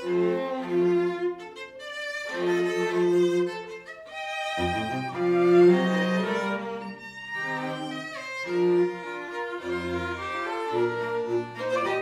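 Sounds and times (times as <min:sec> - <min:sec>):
string ensemble playing chamber music: 0:00.0 - 0:12.0.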